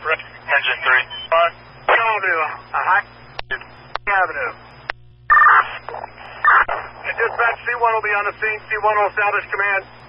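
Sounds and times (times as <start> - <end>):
radio static: 0.0 - 10.0
shrill electronic data bursts: 5.3 - 5.8.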